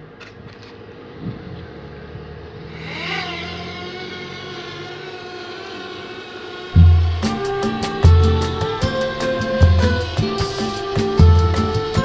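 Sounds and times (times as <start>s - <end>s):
drone propellers whining: 1.4s - 12.0s
loud music with heavy beat: 6.8s - 12.0s.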